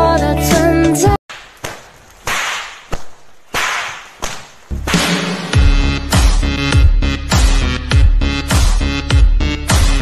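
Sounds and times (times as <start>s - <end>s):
whip-like cracks: 1.3s - 5.6s
music soundtrack: 4.7s - 10.0s.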